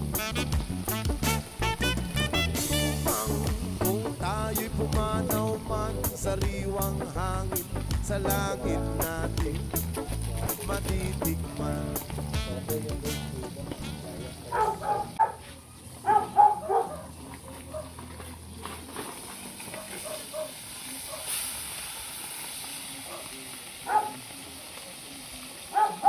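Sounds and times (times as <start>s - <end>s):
dog barking: 14.5s - 18.0s, 19.7s - 21.3s, 23.1s - 24.2s, 25.7s - 26.0s.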